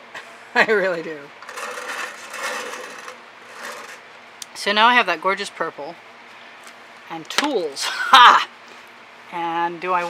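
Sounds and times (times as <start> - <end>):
canvas scraping across a table: 1.5 - 4.0.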